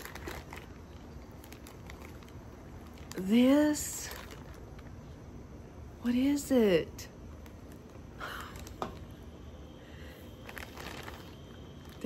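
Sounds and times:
plastic pouch rustling: 0.0 - 5.1, 10.3 - 12.0.

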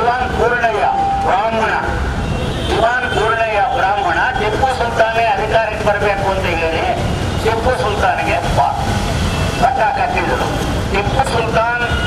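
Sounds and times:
man speaking through microphone: 0.0 - 12.0.

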